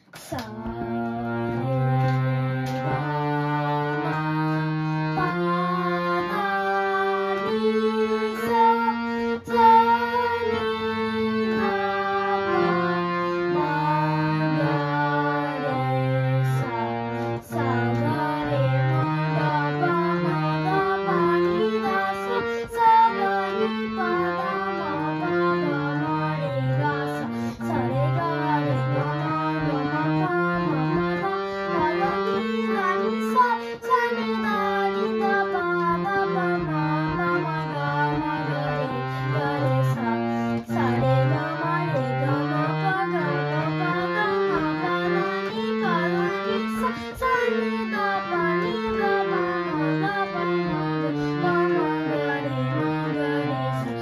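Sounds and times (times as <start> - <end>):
boy singing: 0.0 - 54.0
harmonium melody: 0.0 - 54.0.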